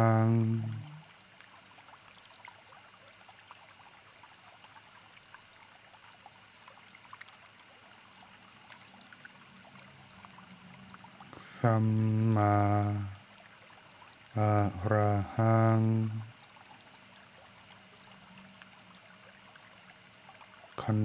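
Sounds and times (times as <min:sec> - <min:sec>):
flowing stream: 0:00.0 - 0:21.0.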